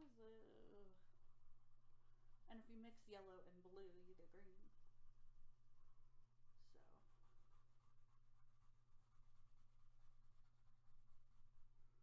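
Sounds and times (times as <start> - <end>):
steady low hum: 0.0 - 12.0
pencil scratching on paper: 3.8 - 12.0.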